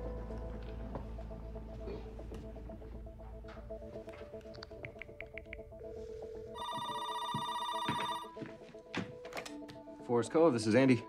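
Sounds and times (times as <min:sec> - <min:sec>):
soft background music: 0:00.0 - 0:11.0
telephone ringing: 0:06.4 - 0:08.4.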